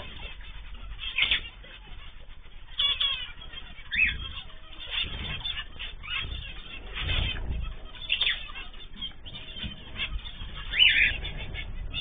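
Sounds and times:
birds making sharp calls: 0.0 - 12.0.

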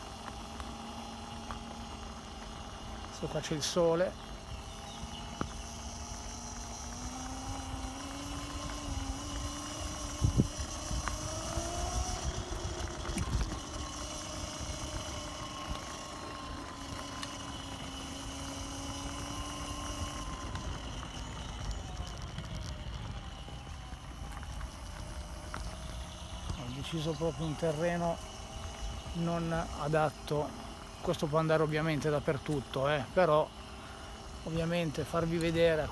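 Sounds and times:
electric scooter motor whine: 0.0 - 35.9
tyres rumbling on paving stones: 0.0 - 35.9.

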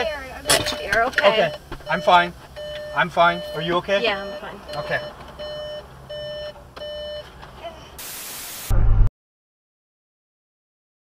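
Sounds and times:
car warning chime beeping: 0.0 - 7.3
loud hiss: 8.0 - 8.7
loud low thump: 8.7 - 9.1.

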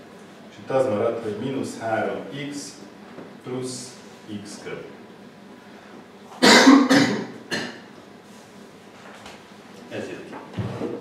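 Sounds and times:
man coughing: 6.4 - 7.9.

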